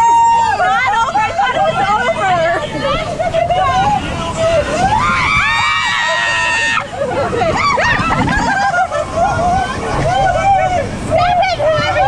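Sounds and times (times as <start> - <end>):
people screaming and shouting: 0.0 - 12.0
rushing rumble of ride: 0.0 - 12.0.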